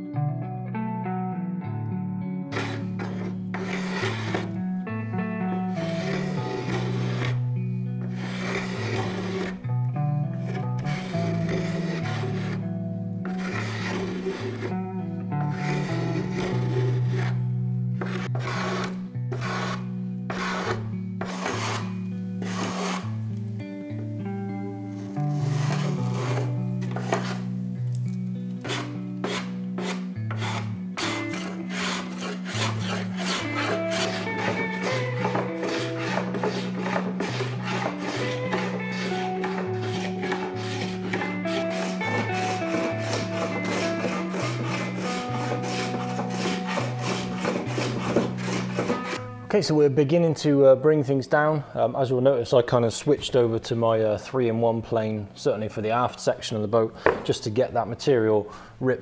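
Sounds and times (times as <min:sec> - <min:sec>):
background music with bass line: 0:00.0 - 0:49.6
sandpaper sanding: 0:02.5 - 0:04.5, 0:05.9 - 0:07.4, 0:08.1 - 0:09.6, 0:10.9 - 0:12.6, 0:13.4 - 0:14.7, 0:15.5 - 0:17.3, 0:18.0 - 0:23.1, 0:25.4 - 0:27.5, 0:28.6 - 0:49.2
hand tools scraping wood: 0:02.5 - 0:04.6, 0:05.7 - 0:09.6, 0:10.3 - 0:12.6, 0:13.2 - 0:14.8, 0:15.4 - 0:17.4, 0:18.0 - 0:23.1, 0:24.9 - 0:27.6, 0:28.6 - 0:49.3.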